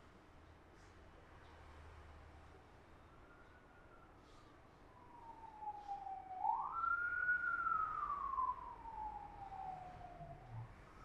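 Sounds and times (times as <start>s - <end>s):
emergency vehicle siren wailing: 4.8s - 11.0s.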